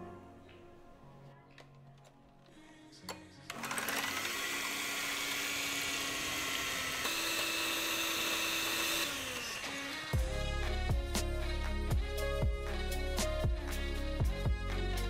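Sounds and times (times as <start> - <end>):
electric hand mixer whirring: 3.5 - 10.3.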